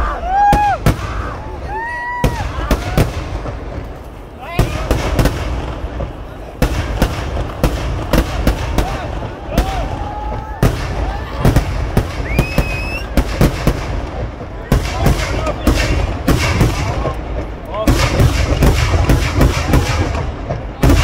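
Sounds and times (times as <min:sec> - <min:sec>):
continuous low rumble: 0:00.0 - 0:21.0
firework bangs: 0:00.0 - 0:21.0.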